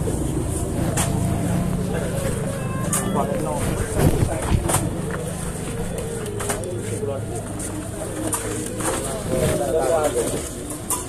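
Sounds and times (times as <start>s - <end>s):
people talking: 0.8s - 11.0s.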